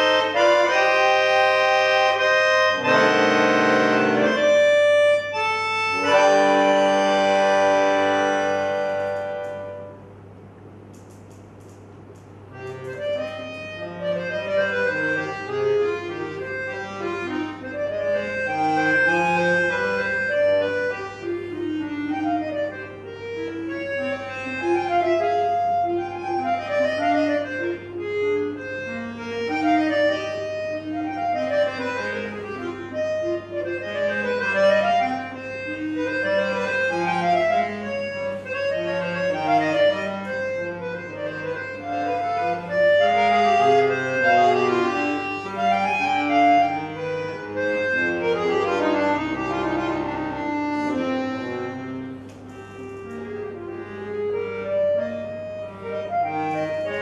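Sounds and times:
button accordion playing classical piece: 0:00.0 - 0:10.2, 0:12.3 - 0:57.0.

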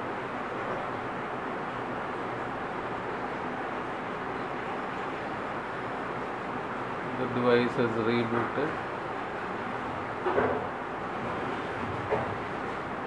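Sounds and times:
steady hiss: 0:00.0 - 0:13.0.

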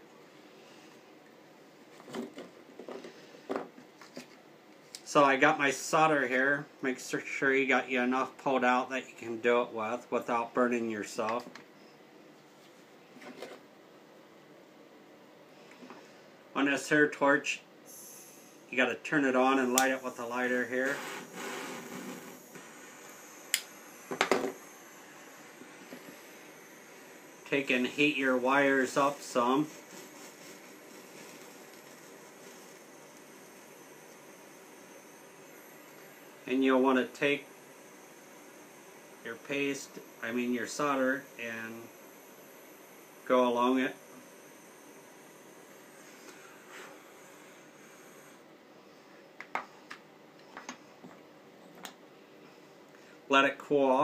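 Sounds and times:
faint steady hiss: 0:00.0 - 0:54.0.

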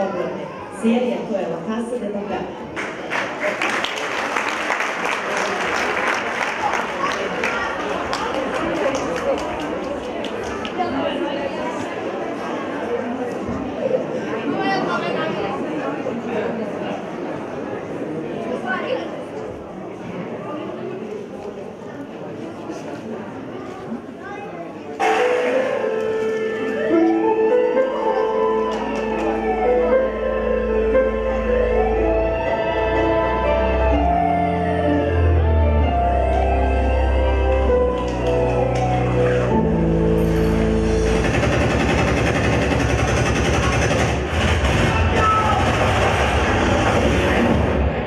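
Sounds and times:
music with long held notes: 0:25.0 - 0:47.9
dense rumbling noise effect: 0:40.8 - 0:48.0.

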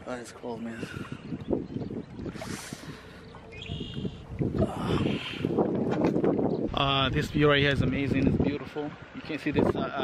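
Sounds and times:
water splashing and lapping: 0:00.0 - 0:10.0.

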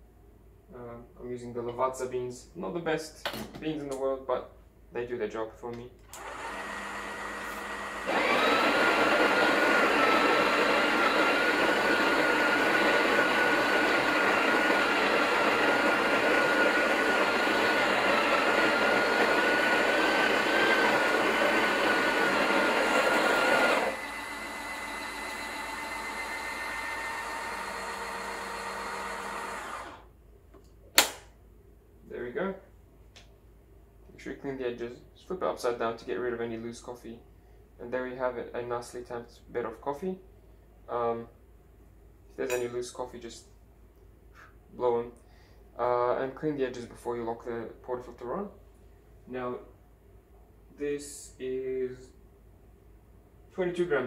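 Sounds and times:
coffee grinder grinding beans: 0:06.2 - 0:30.0
sharp click: 0:30.6 - 0:31.3.

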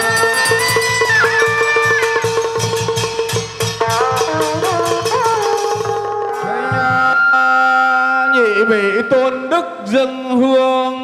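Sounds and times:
long held melodic note: 0:06.3 - 0:09.7.

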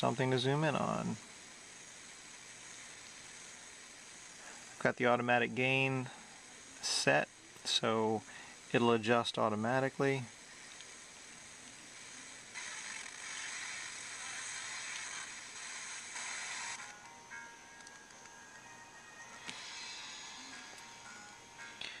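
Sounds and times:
radio static hiss: 0:00.0 - 0:17.3, 0:18.6 - 0:22.0
music on radio: 0:11.9 - 0:22.0.

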